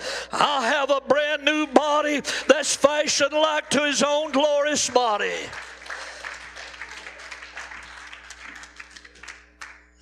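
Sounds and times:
people clapping: 4.1s - 10.0s.

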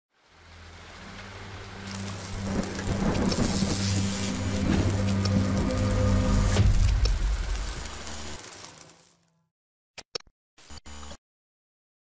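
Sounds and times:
rain: 0.1s - 9.3s
low steady drone: 0.2s - 8.4s
thunder: 1.9s - 8.4s.

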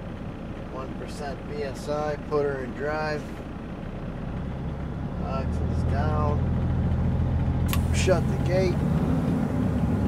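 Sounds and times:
diesel truck engine drone: 0.0s - 10.0s.

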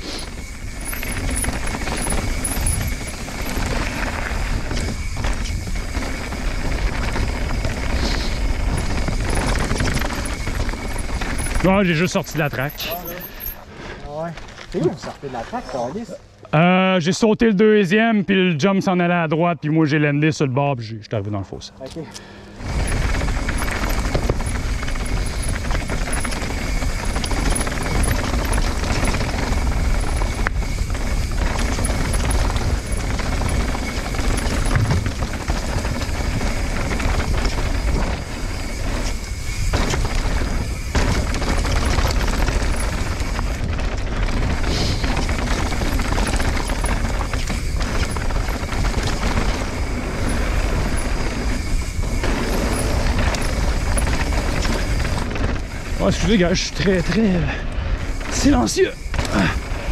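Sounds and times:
bike clatter: 0.0s - 15.1s, 22.2s - 59.9s
bike tyres rolling on gravel: 0.0s - 16.8s, 22.2s - 59.9s
wind rushing on microphone: 22.6s - 59.9s.

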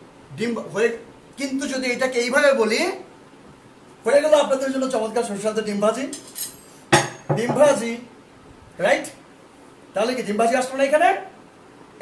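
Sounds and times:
utensil clinking on a dish: 6.1s - 7.6s
person speaking: 7.3s - 8.1s.

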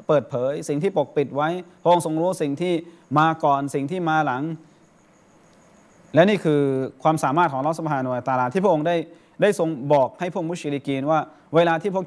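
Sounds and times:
man speaking: 0.0s - 4.7s, 6.2s - 12.0s
high pulsing tone: 0.0s - 9.2s.

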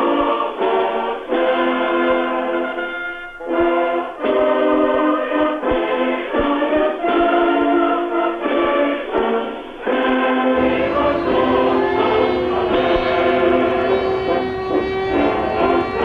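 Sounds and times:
choir singing slow held notes: 0.0s - 16.0s
low rumble: 10.6s - 16.0s.

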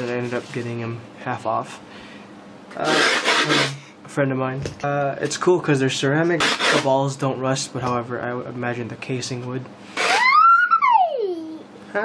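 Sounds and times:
hand rubbing skateboard grip tape: 2.9s - 3.7s, 6.4s - 6.9s.

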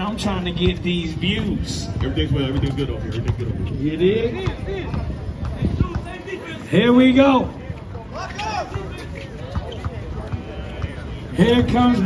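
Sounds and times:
faint crowd voices: 0.0s - 12.0s
basketball bouncing on hard court: 1.9s - 3.8s, 4.4s - 6.2s.

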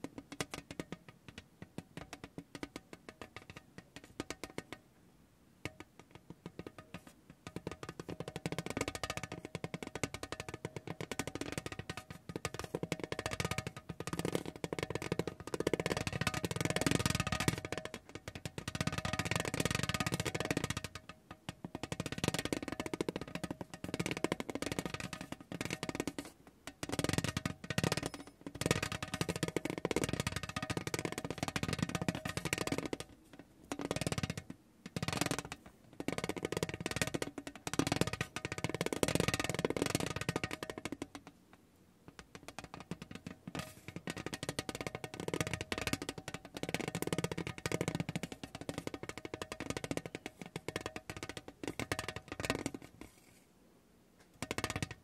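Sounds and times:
rubber ball clattering on tin tray: 5.6s - 41.4s, 42.1s - 53.3s.

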